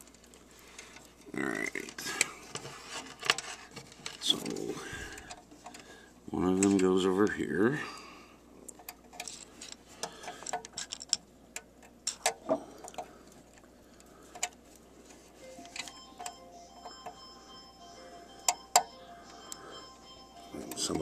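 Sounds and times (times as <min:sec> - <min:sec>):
phone ringtone: 0:15.4 - 0:21.0.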